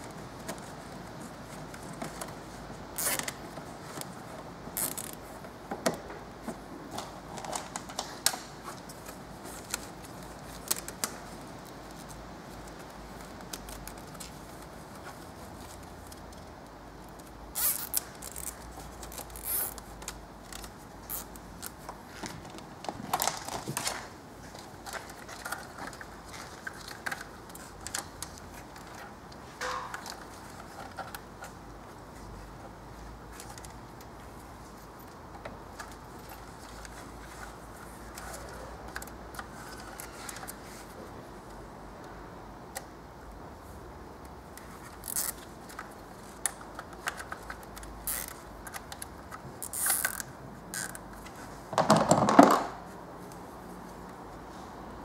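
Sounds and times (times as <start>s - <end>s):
cable ties ratcheting: 3.0s - 4.1s, 4.8s - 5.2s, 15.6s - 21.8s, 44.6s - 51.2s
plastic clicks and rustles: 4.8s - 32.7s, 44.5s - 53.4s.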